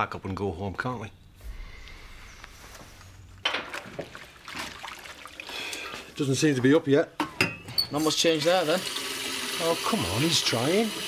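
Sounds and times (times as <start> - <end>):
low hush: 1.1 - 3.4
water splashing in a sink: 3.5 - 6.4, 8.1 - 11.0.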